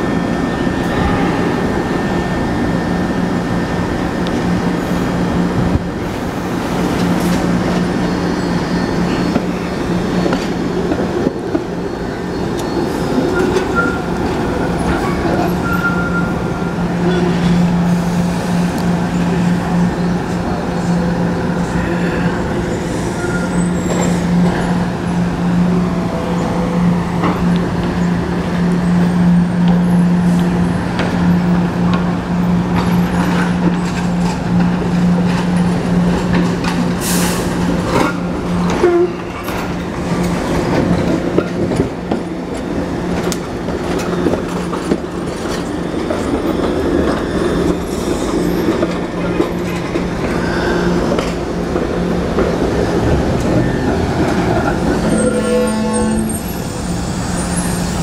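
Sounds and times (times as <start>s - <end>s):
trolley hum: 0.0s - 58.0s.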